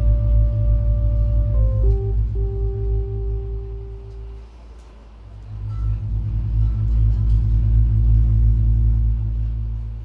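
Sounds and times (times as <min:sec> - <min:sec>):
deep synthesizer drone: 0:00.0 - 0:10.0.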